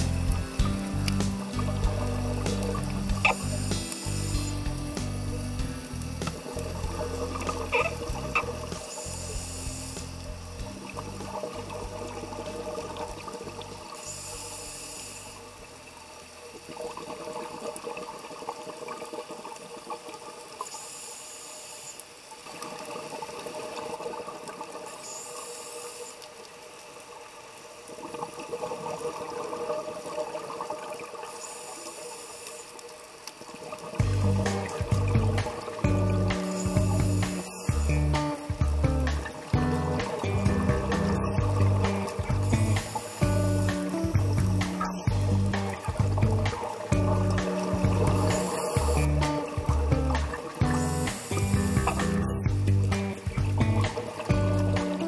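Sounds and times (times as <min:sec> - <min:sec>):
scuba regulator inhalation hiss: 0:00.0 - 0:10.6, 0:13.8 - 0:15.6, 0:20.7 - 0:22.2, 0:24.9 - 0:26.4, 0:31.2 - 0:32.9, 0:34.2 - 0:38.6, 0:40.9 - 0:45.8, 0:46.6 - 0:49.4, 0:50.6 - 0:52.4
background music with bass: 0:00.0 - 0:13.9, 0:34.0 - 0:55.0
exhaled bubbles underwater: 0:33.5 - 0:55.0.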